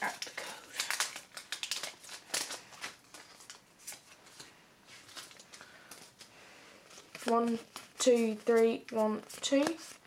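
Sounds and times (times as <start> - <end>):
cards being shuffled: 0.7 - 10.0.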